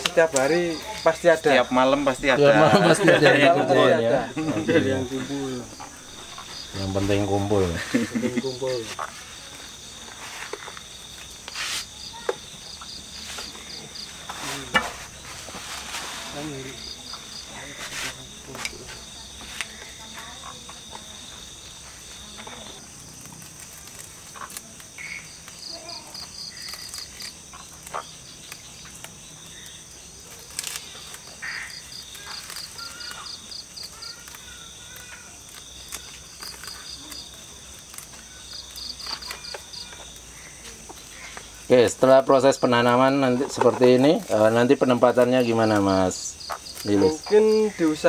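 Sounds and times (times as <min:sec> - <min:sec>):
crickets chirping: 0:00.0 - 0:48.0
high insect trill: 0:00.0 - 0:48.0
hands pressing sandy soil: 0:04.4 - 0:20.0.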